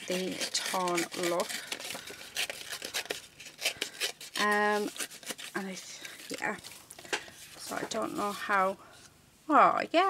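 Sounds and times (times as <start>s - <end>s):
paper being torn by hand: 0.0s - 6.9s.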